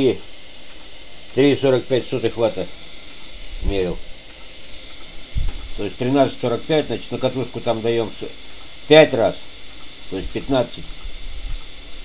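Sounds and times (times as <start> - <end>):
motor-generator running with hiss: 0.0 - 12.0.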